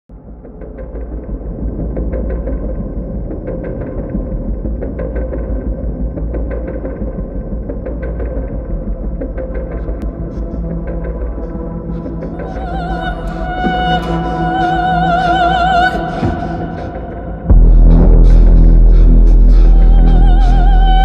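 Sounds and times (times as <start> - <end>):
low rumbling drone: 0.2 - 21.0.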